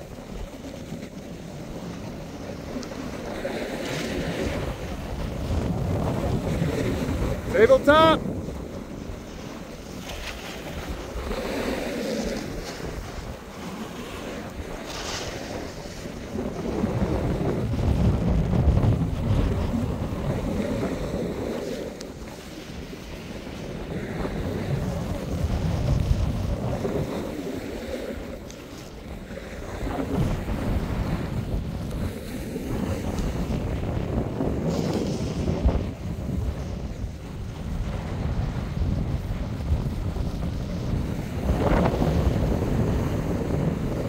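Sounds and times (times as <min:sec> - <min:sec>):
sliding on packed snow: 0:00.0 - 0:44.0
wind rushing over microphone: 0:00.0 - 0:44.0.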